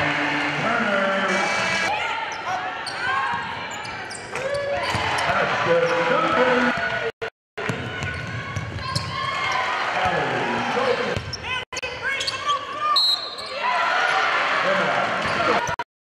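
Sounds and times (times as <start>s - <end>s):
players and spectators voices: 0.0s - 15.8s
sneakers squeaking: 2.3s - 5.3s, 8.0s - 9.4s, 11.2s - 13.6s.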